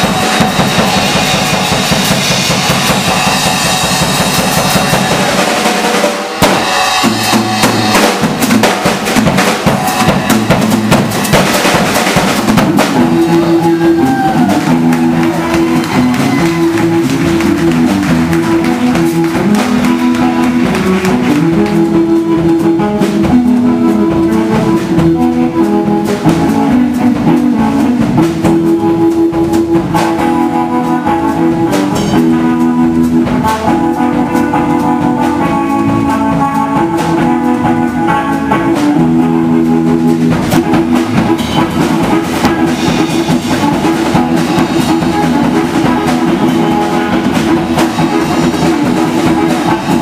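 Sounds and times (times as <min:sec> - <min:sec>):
blues band playing: 0:00.0 - 0:50.0
drum kit beat: 0:00.0 - 0:50.0
guitars: 0:00.0 - 0:50.0.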